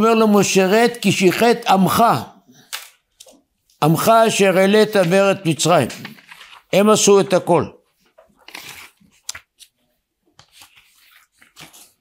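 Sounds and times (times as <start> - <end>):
paper sheets rustling: 4.6 - 7.1, 7.9 - 12.0
paper crackle: 5.8 - 6.7, 8.1 - 9.8, 10.4 - 12.0.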